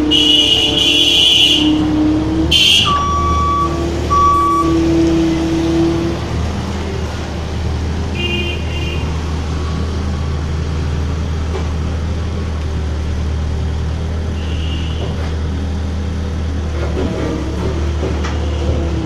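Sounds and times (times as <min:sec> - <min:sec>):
diesel engine running: 0:00.0 - 0:19.0
steady beeps: 0:02.9 - 0:04.8.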